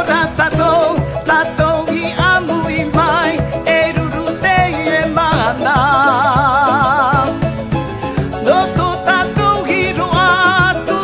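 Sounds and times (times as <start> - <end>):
live band playing: 0.0 - 11.0
man singing: 0.0 - 11.0.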